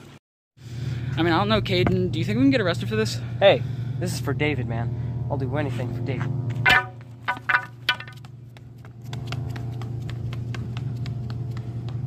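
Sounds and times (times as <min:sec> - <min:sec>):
footsteps running up concrete steps: 0:06.7 - 0:12.0.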